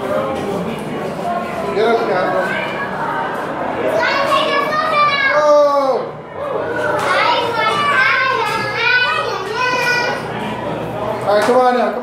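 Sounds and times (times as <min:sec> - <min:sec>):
children shouting and squealing: 0:02.1 - 0:10.6.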